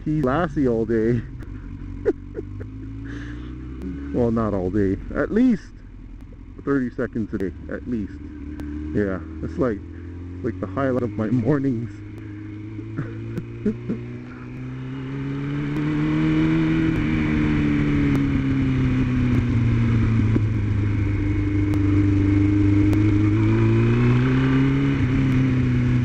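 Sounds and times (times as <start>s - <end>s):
road and wind noise: 0.0s - 26.0s
vehicle engine running: 0.0s - 26.0s.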